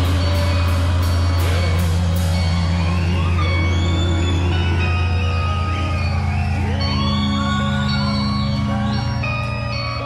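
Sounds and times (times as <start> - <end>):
low bass drone: 0.0 - 10.0.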